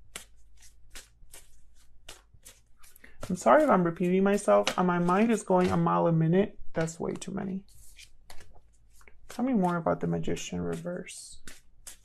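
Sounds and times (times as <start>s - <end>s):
cards being shuffled: 0.0s - 6.0s, 6.8s - 12.0s.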